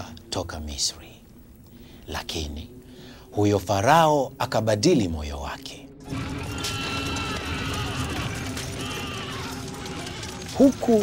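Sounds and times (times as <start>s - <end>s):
faint cries: 6.1s - 10.6s
galloping hooves and rolling wheels: 6.1s - 11.0s.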